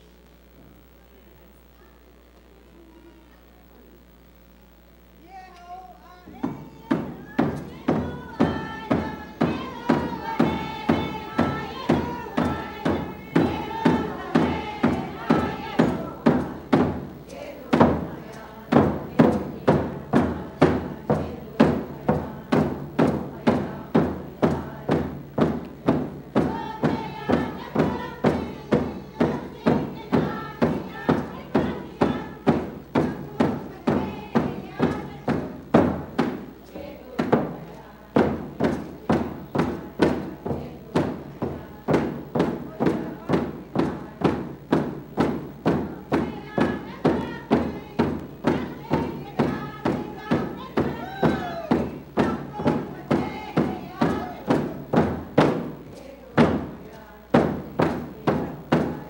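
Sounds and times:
group singing in unison: 6.2 - 59.0
hand drums steady beat: 6.3 - 59.0.

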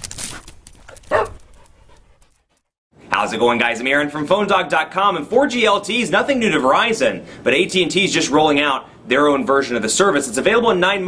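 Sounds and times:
dog bark: 1.1 - 1.4.

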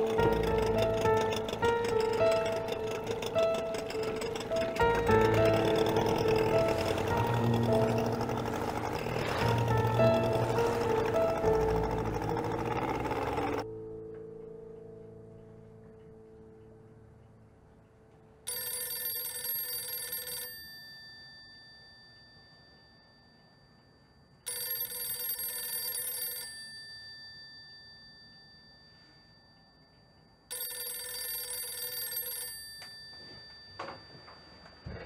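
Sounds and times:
telephone bell ringing: 0.0 - 13.6, 18.5 - 23.8, 24.4 - 29.8, 30.5 - 35.0.

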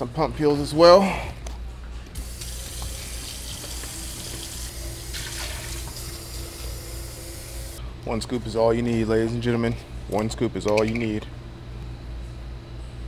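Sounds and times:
faucet running water: 2.2 - 7.8.

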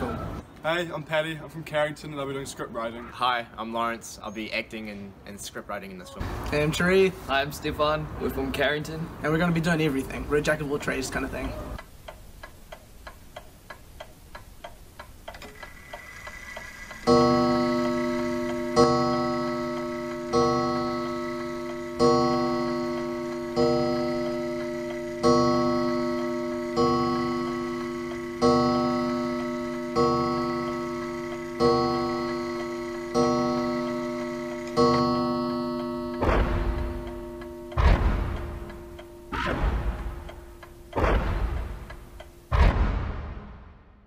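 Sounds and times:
faint clock ticking: 9.3 - 42.5.

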